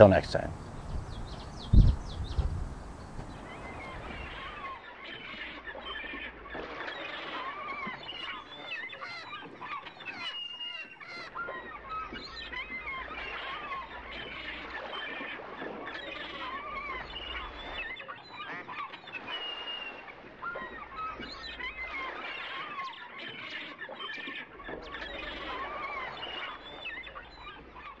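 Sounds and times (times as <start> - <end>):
chorus of birds calling: 0.0 - 28.0.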